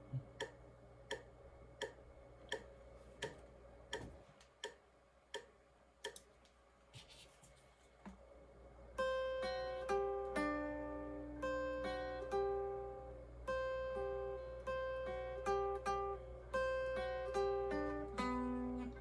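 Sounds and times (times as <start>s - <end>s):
faint amplifier hum: 0.0s - 19.0s
steady metronome click: 0.1s - 6.6s
picked electric guitar notes: 9.0s - 19.0s.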